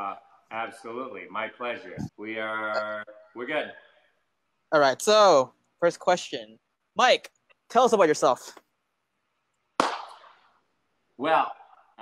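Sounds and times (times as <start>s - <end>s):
sharp crack: 9.8s - 10.5s.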